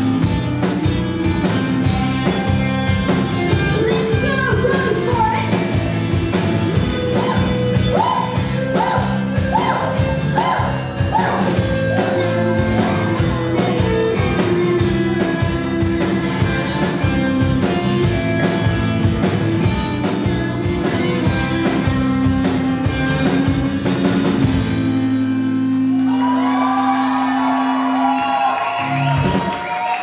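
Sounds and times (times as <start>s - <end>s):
bass guitar: 0.0s - 30.0s
drums: 0.0s - 30.0s
electric guitar: 0.0s - 30.0s
woman singing: 3.7s - 5.5s
wavering pitched sounds: 7.0s - 14.4s.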